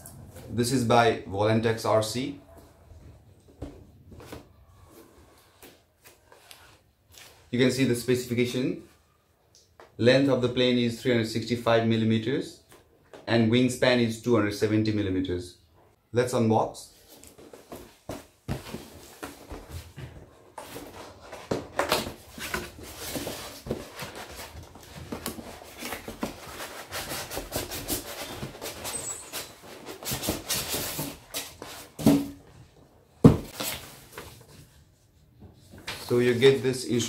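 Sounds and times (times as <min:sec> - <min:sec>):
cardboard box rustling and scraping: 0:17.4 - 0:32.2.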